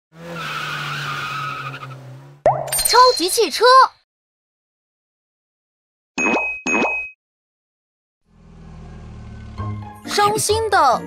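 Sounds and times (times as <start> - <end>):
cartoon tyre squeal: 0.2 - 2.1
low engine hum: 8.2 - 10.5.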